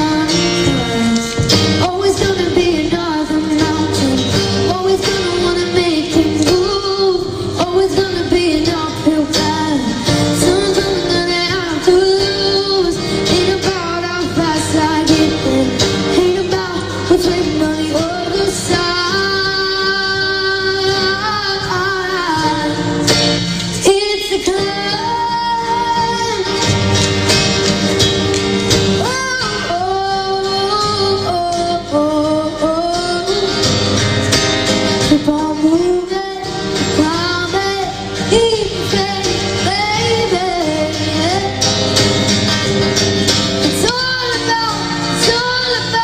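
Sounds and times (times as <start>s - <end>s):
acoustic guitar strumming: 0.0s - 46.0s
girl singing a pop ballad: 0.0s - 46.0s.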